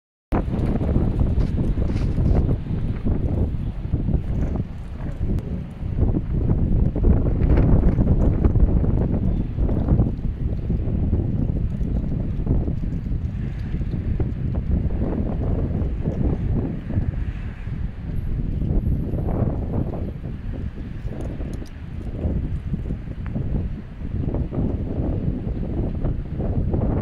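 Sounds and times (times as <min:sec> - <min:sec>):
wind buffeting microphone: 0:00.3 - 0:27.0.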